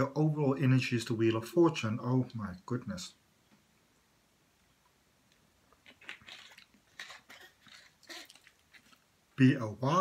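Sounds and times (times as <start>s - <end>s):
plastic bottle crackling: 5.7s - 9.2s.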